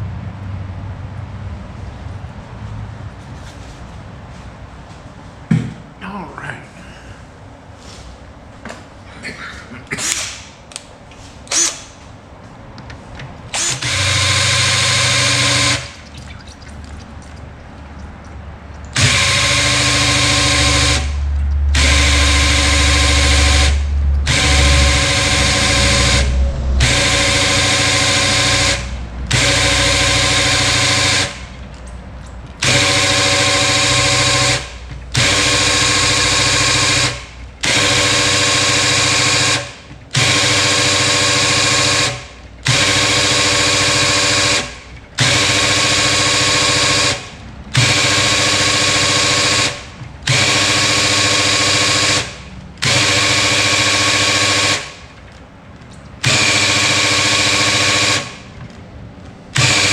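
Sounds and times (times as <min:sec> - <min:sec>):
cordless drill running: 0:13.5 - 0:16.0, 0:18.9 - 0:31.5, 0:32.6 - 0:55.0, 0:56.2 - 0:58.4, 0:59.6 - 0:59.9.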